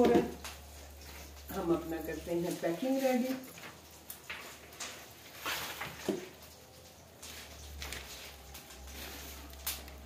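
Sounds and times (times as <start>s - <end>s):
food packaging rustling: 0.0s - 10.0s.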